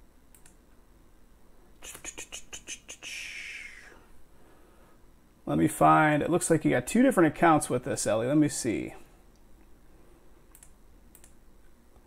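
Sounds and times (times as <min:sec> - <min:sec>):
short breathy hiss: 0:01.8 - 0:05.0.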